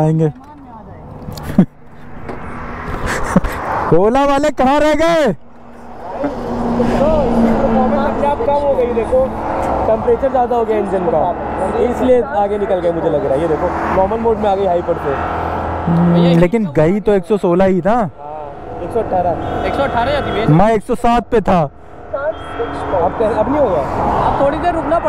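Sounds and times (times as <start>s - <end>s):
men talking and exclaiming: 0.0s - 25.0s.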